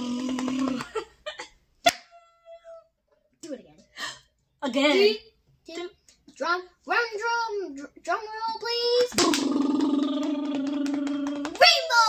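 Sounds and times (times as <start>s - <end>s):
soft vocal sounds: 0.0s - 0.9s, 9.1s - 11.6s
sharp clap: 8.5s - 12.0s
vocal drum roll: 9.2s - 11.4s.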